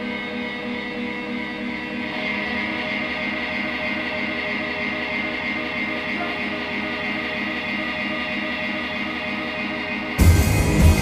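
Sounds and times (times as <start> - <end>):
electric guitar droning chord: 0.0 - 11.0.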